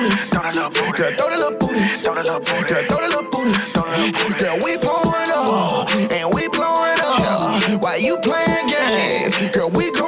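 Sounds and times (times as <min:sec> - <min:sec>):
rapping over a beat: 0:00.0 - 0:10.0.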